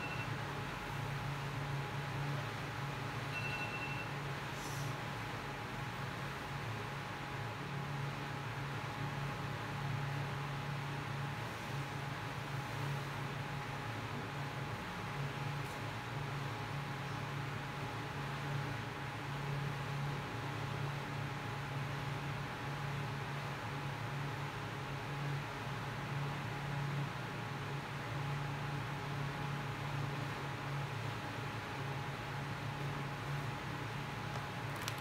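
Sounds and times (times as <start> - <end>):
faint steady high tone: 0.0 - 0.5, 3.1 - 4.2
fan drone with hiss and hum: 0.0 - 35.0.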